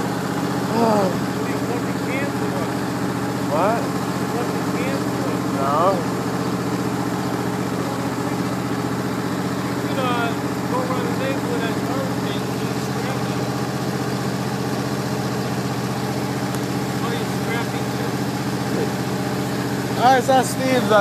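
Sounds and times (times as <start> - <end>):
lawn mower engine running: 0.0 - 21.0.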